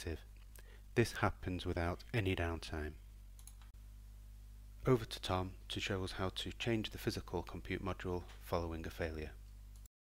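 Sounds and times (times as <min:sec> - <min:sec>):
man speaking: 0:00.0 - 0:00.3, 0:00.9 - 0:03.0, 0:04.8 - 0:09.4
low steady hum: 0:00.0 - 0:09.9
computer mouse clicks: 0:03.4 - 0:03.8.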